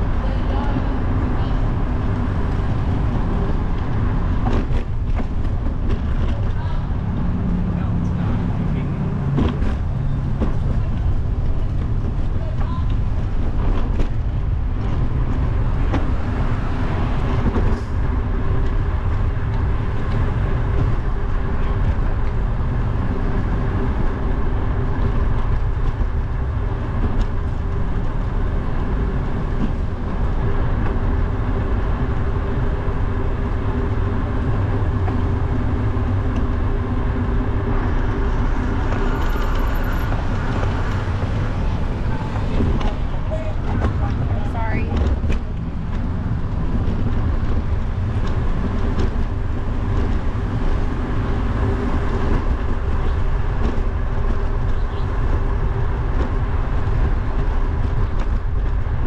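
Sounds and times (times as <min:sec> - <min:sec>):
vehicle engine hum: 0:00.0 - 0:59.0
wind buffeting microphone: 0:00.0 - 0:59.0.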